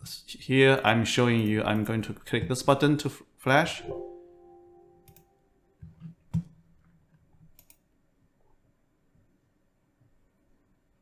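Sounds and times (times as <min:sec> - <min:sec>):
computer warning chime: 0:03.7 - 0:05.5
mouse click: 0:05.0 - 0:05.3.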